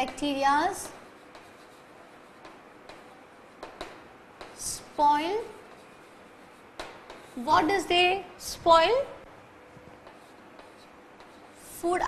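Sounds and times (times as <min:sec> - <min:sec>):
chalk ticking on board: 0:00.0 - 0:04.7, 0:05.6 - 0:07.4, 0:10.0 - 0:11.6
chalk scraping on blackboard: 0:00.6 - 0:07.7, 0:10.0 - 0:11.8.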